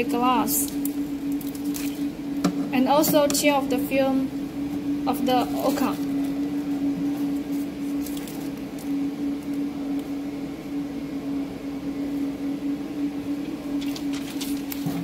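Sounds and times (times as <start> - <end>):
steady low hum: 0.0 - 15.0
plastic film peeling crackles: 7.4 - 10.0, 13.8 - 15.0.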